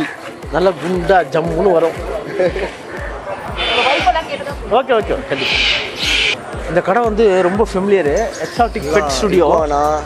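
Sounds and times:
background music with low beat: 0.0s - 10.0s
caged birds chattering: 2.0s - 6.7s, 7.3s - 10.0s.

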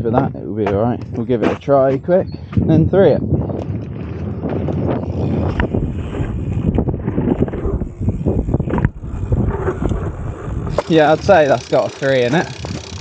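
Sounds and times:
wind buffeting microphone: 0.0s - 13.0s
tyre noise on dirt: 0.6s - 13.0s.

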